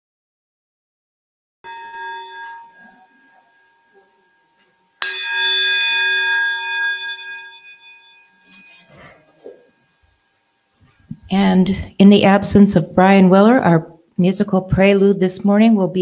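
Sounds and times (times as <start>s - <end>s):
bell ringing: 1.7s - 10.7s.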